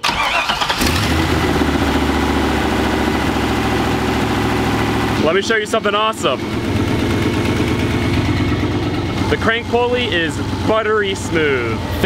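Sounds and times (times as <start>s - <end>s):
car engine starting and idling: 0.0s - 12.0s.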